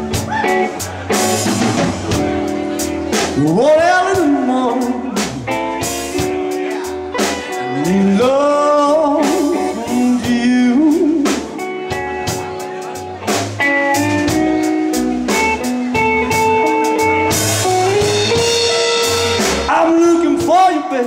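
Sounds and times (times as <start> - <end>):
drums: 0.0 - 21.0
electric bass: 0.0 - 21.0
electric guitar: 0.0 - 21.0.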